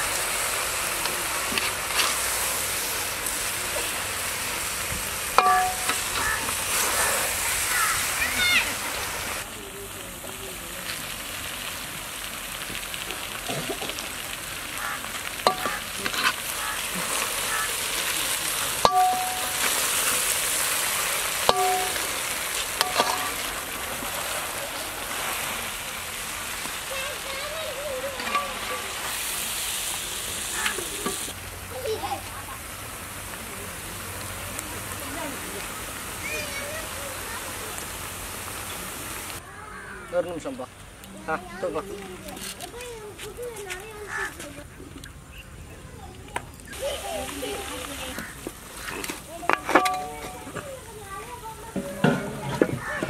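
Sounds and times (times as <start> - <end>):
food sizzling in a pot: 0.0 - 44.3, 46.5 - 53.0
ladle clanging on metal pot: 5.4 - 6.3, 18.8 - 19.8, 21.5 - 23.4, 49.6 - 50.5.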